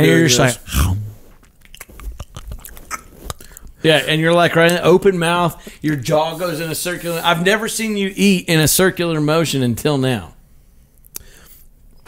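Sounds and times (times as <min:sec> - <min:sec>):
person chewing honeycomb: 0:00.6 - 0:03.8.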